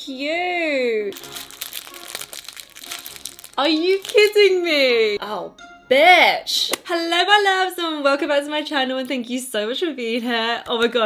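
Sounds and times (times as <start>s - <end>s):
plastic sleeves crinkling: 1.1s - 5.1s.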